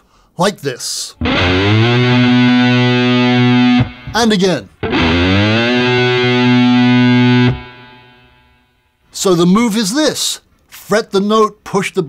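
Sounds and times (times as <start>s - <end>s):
distorted electric guitar note: 1.2s - 8.8s.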